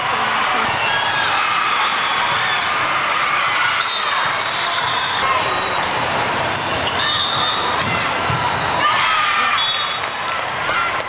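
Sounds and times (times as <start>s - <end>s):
sneakers squeaking on courts: 3.8s - 10.4s
volleyballs being hit and bouncing: 4.0s - 11.0s.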